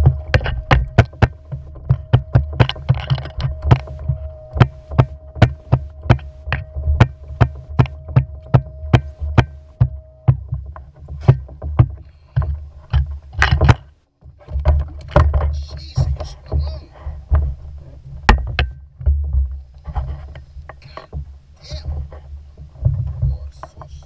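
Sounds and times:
low wind rumble on microphone: 0.0s - 24.0s
scattered knocks: 0.0s - 24.0s
steady hum: 0.0s - 24.0s.

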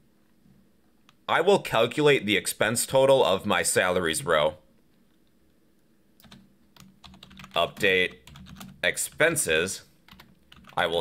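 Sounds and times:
computer keyboard clicks: 6.2s - 8.8s, 10.1s - 10.8s.

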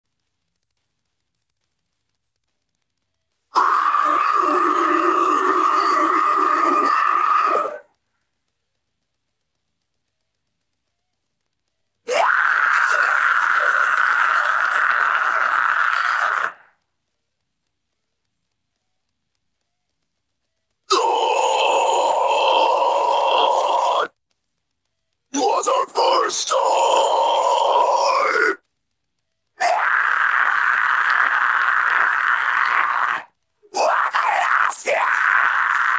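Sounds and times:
harsh vocal scream: 3.5s - 7.9s, 12.1s - 16.7s, 20.9s - 24.2s, 25.3s - 28.6s, 29.6s - 35.9s.

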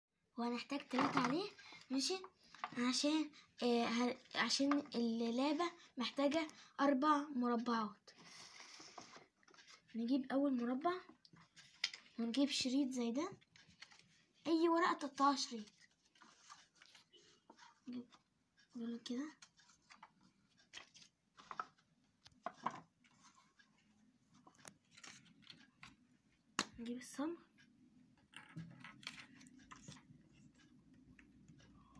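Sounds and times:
paper cubes sliding on wooden table: 8.2s - 9.3s
paper rustling and tapping: 19.3s - 23.4s.

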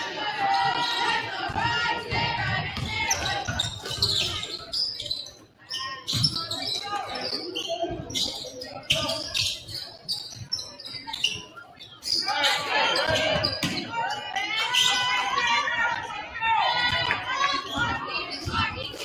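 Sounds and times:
voices echoing in a gym: 0.0s - 19.0s
basketball bouncing on wooden floor: 1.5s - 4.0s.

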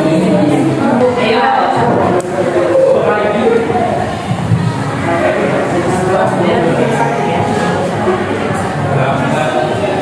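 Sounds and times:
babble of overlapping voices: 0.0s - 10.0s.

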